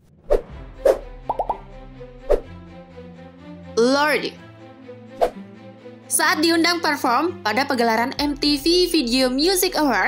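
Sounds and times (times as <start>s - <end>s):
plop-like sound effects: 1.2s - 1.6s.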